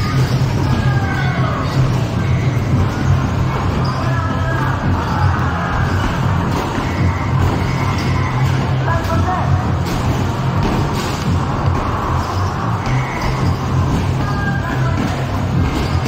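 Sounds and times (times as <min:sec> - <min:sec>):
basketballs hitting backboard and rim: 0:00.0 - 0:16.0
music playing: 0:00.0 - 0:16.0
voices in background: 0:00.0 - 0:16.0.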